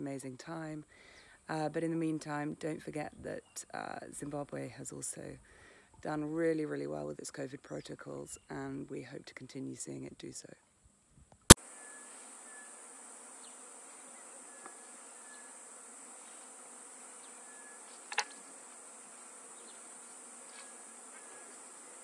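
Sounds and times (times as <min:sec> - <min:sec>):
insects droning: 0:11.6 - 0:22.0.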